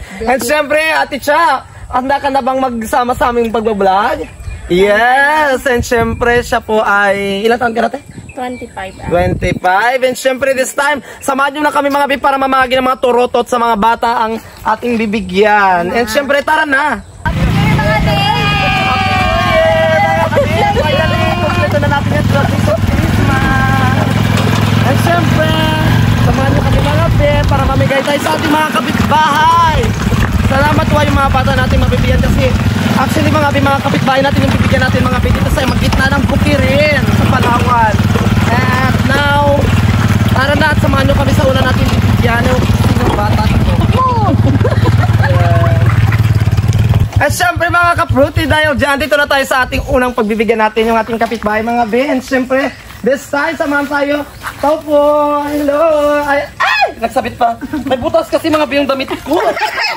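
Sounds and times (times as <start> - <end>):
voices calling out: 0.0 - 59.9
small motorcycle engine running: 17.3 - 49.4.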